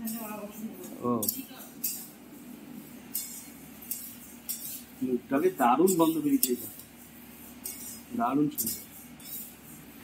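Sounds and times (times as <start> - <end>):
faint low room hum: 0.0 - 10.0
metal spatula scraping steel wok: 0.0 - 10.0.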